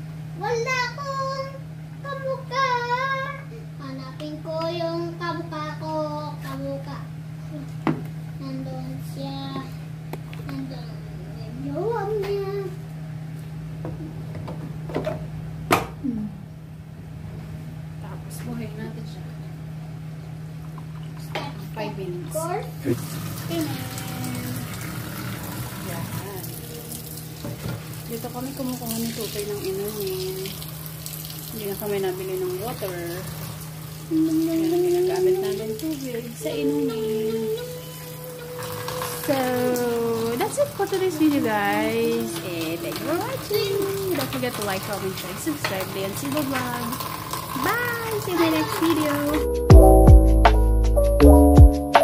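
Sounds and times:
steady low hum: 0.0s - 46.3s
child singing: 0.4s - 6.9s, 34.1s - 40.4s
water stream into steel sink: 22.9s - 36.5s, 37.7s - 49.4s.

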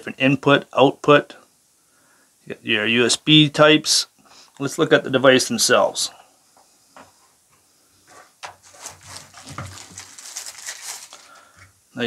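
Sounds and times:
plastic sleeve crinkling: 8.4s - 11.7s.

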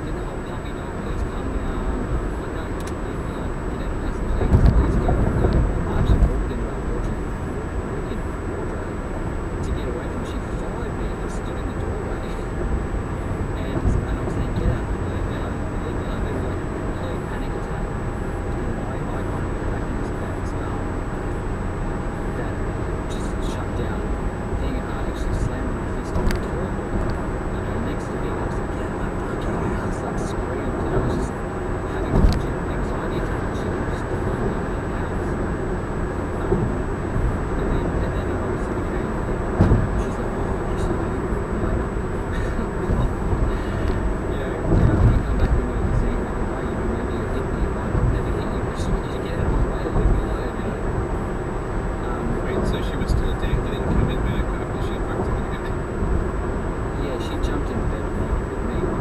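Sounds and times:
faint high whine: 0.0s - 59.0s
road and tyre noise in car: 0.0s - 59.0s.

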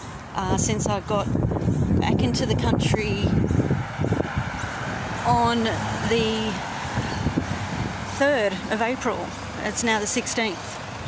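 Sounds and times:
faint traffic: 0.0s - 11.0s
wind buffeting microphone: 0.2s - 9.9s.

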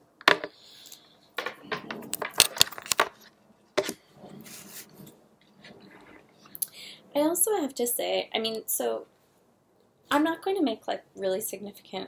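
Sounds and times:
soft rustling: 3.1s - 6.6s.

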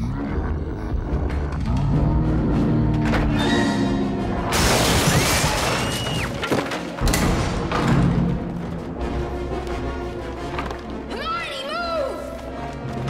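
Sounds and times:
dramatic orchestral score: 0.0s - 13.0s
wood splintering crashes: 4.5s - 8.2s.

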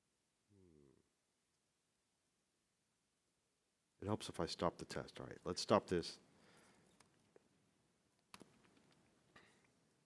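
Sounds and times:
faint keyboard clicks: 8.2s - 9.8s.

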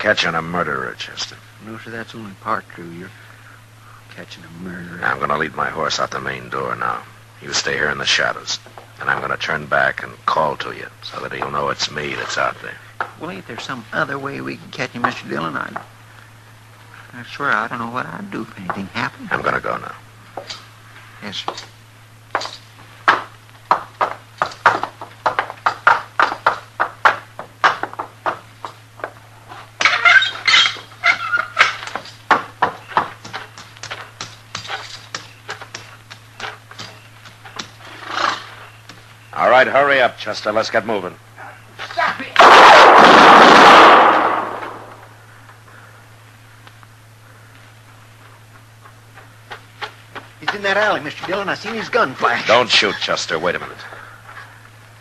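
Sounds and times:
steady low hum: 0.0s - 55.0s
horse hoofbeats at a walk: 22.4s - 29.2s, 31.9s - 37.8s, 48.2s - 52.2s
loud gunshot blast: 42.4s - 45.0s.

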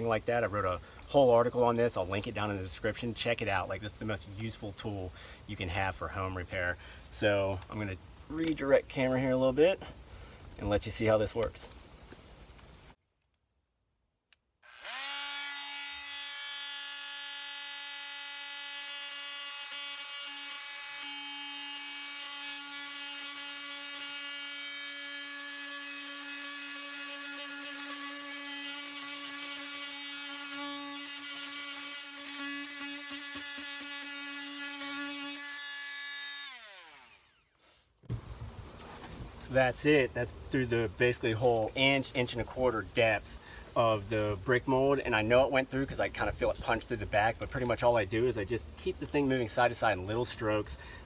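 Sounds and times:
oscillating multi-tool buzzing: 14.6s - 37.6s.

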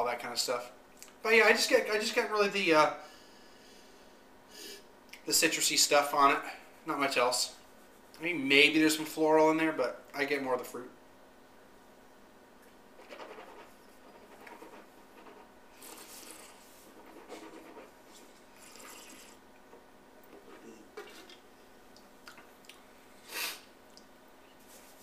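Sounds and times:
sipping wine: 18.5s - 19.4s.

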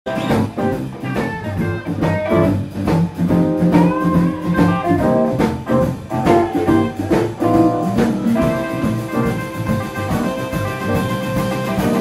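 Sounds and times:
bass guitar: 0.0s - 12.0s
drum kit playing: 0.1s - 12.0s
electric guitars: 0.1s - 12.0s.

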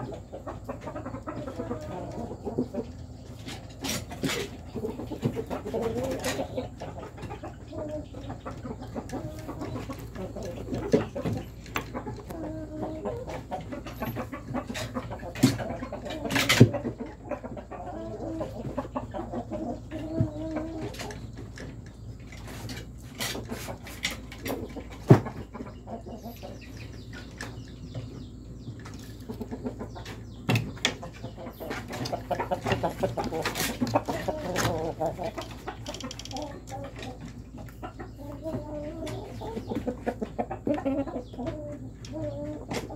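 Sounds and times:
chickens clucking: 0.0s - 42.9s.

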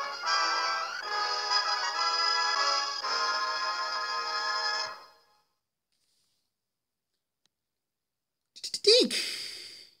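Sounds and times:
person sighing: 9.1s - 10.0s.

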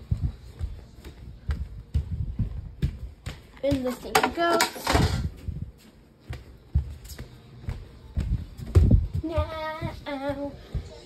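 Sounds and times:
girl singing: 8.8s - 11.0s.

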